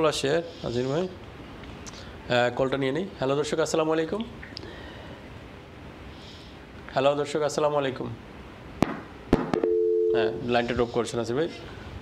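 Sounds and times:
two-note telephone tone: 0:09.6 - 0:10.5.

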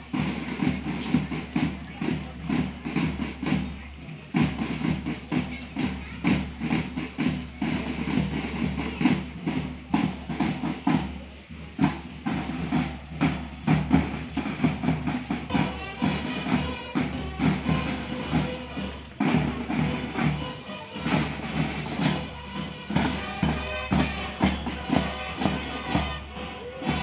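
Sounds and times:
band music: 0:00.0 - 0:27.0
marching drum beat: 0:00.0 - 0:27.0.

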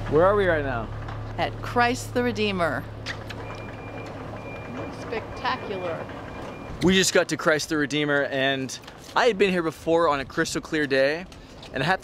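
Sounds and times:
electronic warning beeps: 0:03.3 - 0:07.0.

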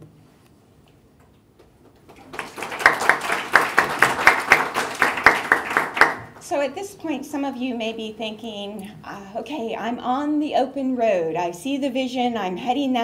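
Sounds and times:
audience applauding: 0:01.9 - 0:06.5.

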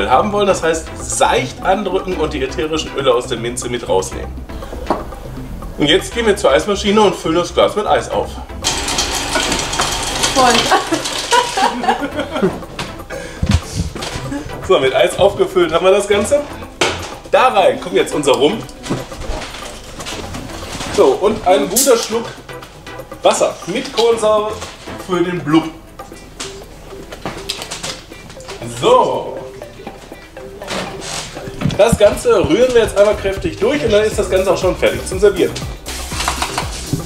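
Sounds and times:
ice machine dispensing ice: 0:08.6 - 0:12.0, 0:35.9 - 0:36.9
man laughing and talking: 0:10.7 - 0:15.5.

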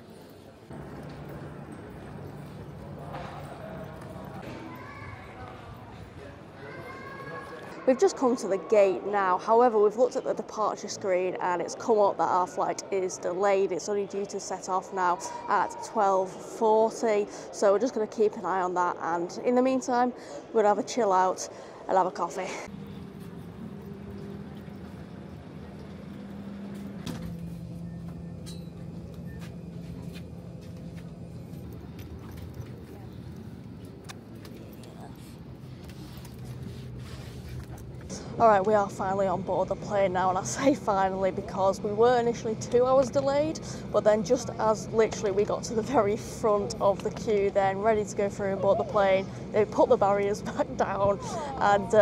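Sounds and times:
low hum: 0:22.7 - 0:51.7
footsteps on tiled floor: 0:29.1 - 0:32.8.

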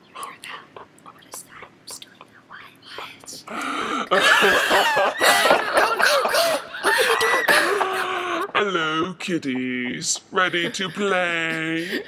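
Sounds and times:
hushed whispering voices: 0:00.0 - 0:03.6.

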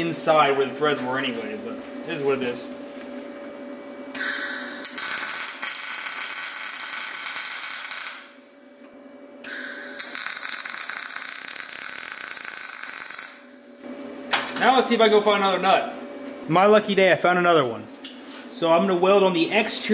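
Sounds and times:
welding arc crackling: 0:04.2 - 0:08.9, 0:09.5 - 0:13.8.

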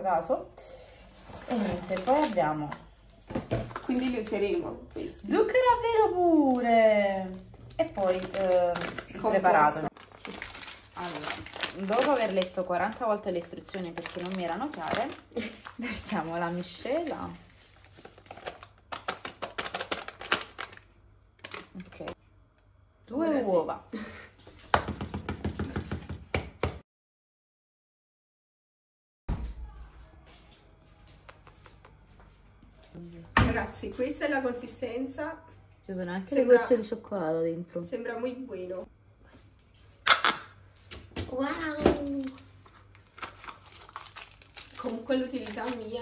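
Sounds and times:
foil bag crinkling and rattling: 0:01.4 - 0:02.7, 0:06.2 - 0:22.1, 0:41.6 - 0:46.0.

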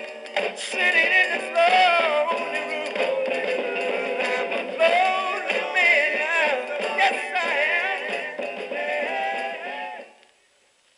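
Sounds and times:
soul record with vocal group: 0:00.7 - 0:10.1.

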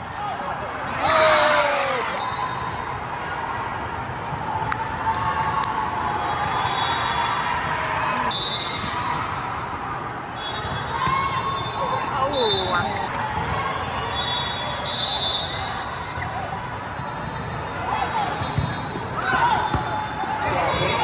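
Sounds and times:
short high whistle blasts: 0:14.1 - 0:15.7.

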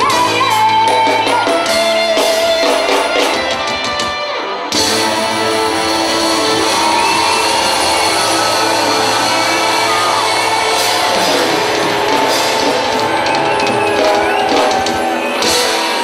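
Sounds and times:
live band with electric guitar: 0:00.0 - 0:16.0.

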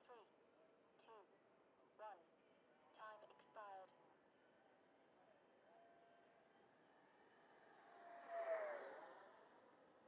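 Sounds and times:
model jet whine flying past: 0:07.9 - 0:09.5.

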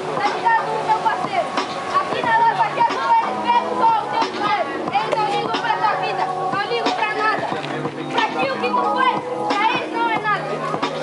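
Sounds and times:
hip-hop beat: 0:00.0 - 0:11.0
voices: 0:00.0 - 0:11.0
man rapping over a beat: 0:00.2 - 0:11.0.

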